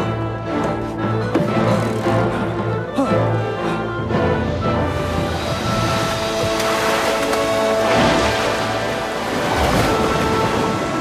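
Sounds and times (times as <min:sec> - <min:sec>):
orchestral music with string chords: 0:00.0 - 0:11.0
wash of noise: 0:04.1 - 0:11.0.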